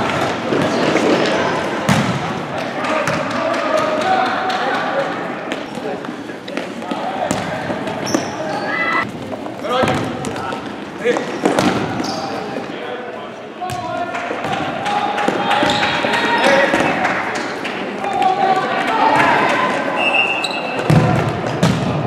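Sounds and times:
sneakers squeaking: 0:05.5 - 0:10.6, 0:11.5 - 0:12.7, 0:19.9 - 0:21.7
people calling out: 0:08.0 - 0:09.0.

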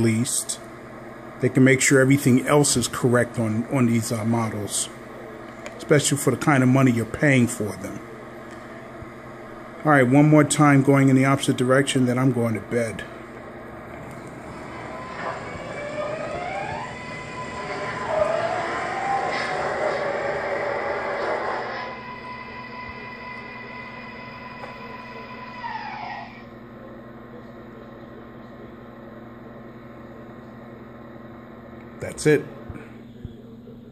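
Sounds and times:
model train motor whine: 0:14.5 - 0:26.5.

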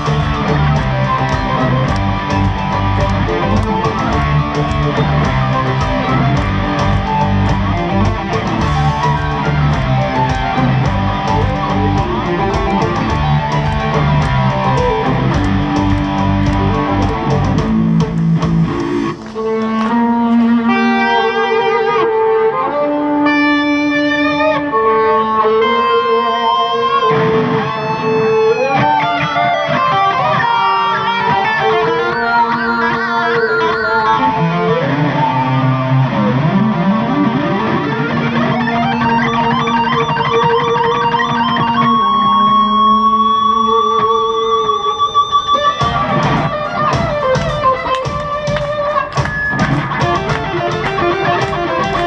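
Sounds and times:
electric violin melody: 0:00.0 - 0:17.6, 0:19.3 - 0:52.0
electric guitar: 0:00.0 - 0:52.0.

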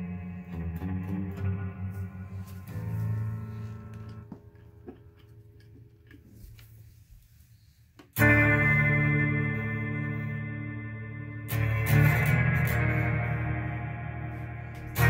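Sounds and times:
electric guitar chords: 0:00.0 - 0:05.7, 0:08.2 - 0:15.0.

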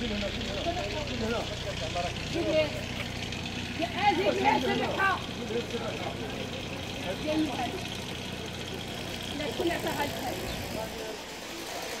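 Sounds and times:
men talking: 0:00.0 - 0:12.0.

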